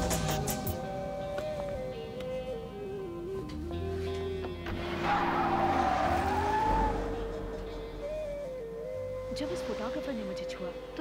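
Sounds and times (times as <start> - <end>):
background music: 0.0 - 11.0
car tyres screeching: 4.6 - 10.2.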